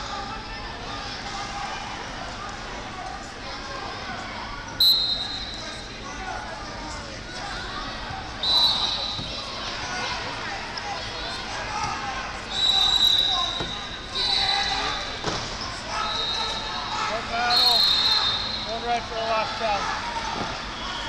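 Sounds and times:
echoing babble of voices: 0:00.0 - 0:21.0
referee whistle blasts: 0:04.8 - 0:05.6, 0:08.4 - 0:09.3, 0:12.5 - 0:15.1, 0:17.4 - 0:18.8.

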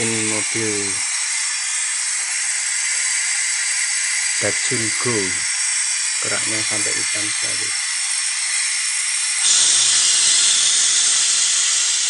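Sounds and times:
engine intake hiss: 0:00.0 - 0:12.0.

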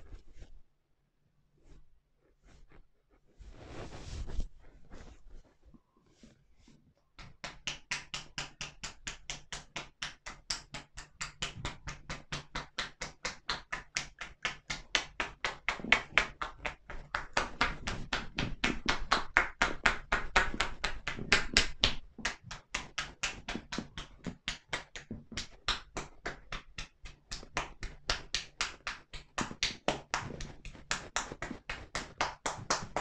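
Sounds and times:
hands striking shoulders rhythmically: 0:07.2 - 0:33.0.

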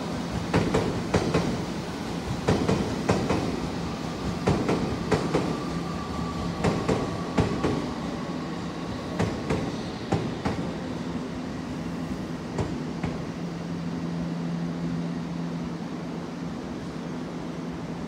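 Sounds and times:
electric train hum: 0:00.0 - 0:18.0
train wheels clacking: 0:00.4 - 0:01.7, 0:02.3 - 0:05.7, 0:06.5 - 0:07.9, 0:09.2 - 0:10.8.

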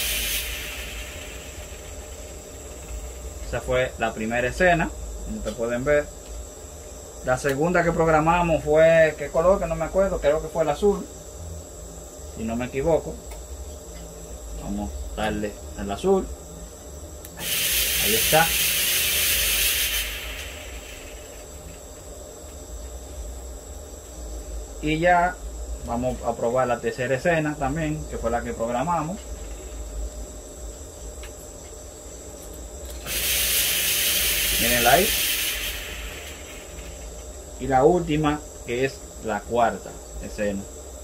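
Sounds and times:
fog machines hissing: 0:00.0 - 0:04.8, 0:17.4 - 0:22.1, 0:32.9 - 0:40.7
fog machine humming: 0:00.0 - 0:41.0.

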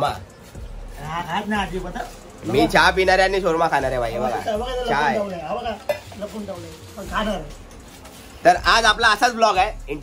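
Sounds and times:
man speaking: 0:00.9 - 0:07.6.

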